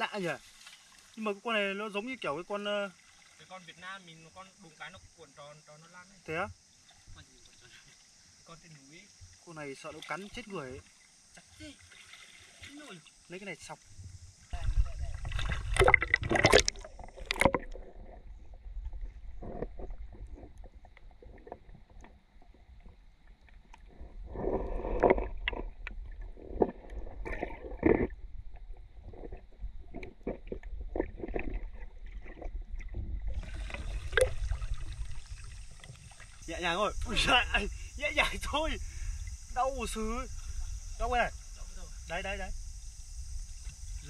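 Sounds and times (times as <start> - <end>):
water splashing: 0.0 - 5.3, 6.8 - 42.4
steady hiss of water: 0.0 - 44.0
muffled underwater rumble: 13.8 - 44.0.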